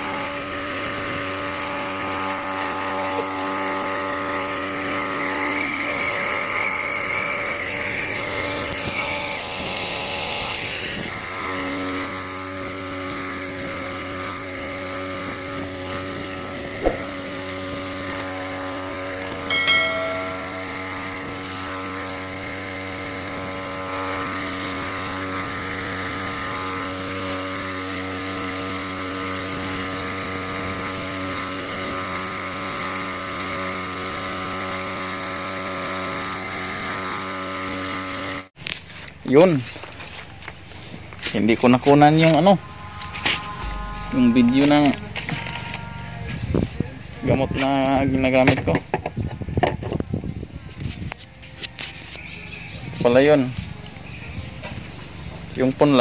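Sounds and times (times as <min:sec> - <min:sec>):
small petrol engine running: 0:00.0 - 0:56.0
sharp click: 0:18.1 - 0:18.3
short high-pitched tone: 0:19.4 - 0:21.6, 0:42.6 - 0:46.4.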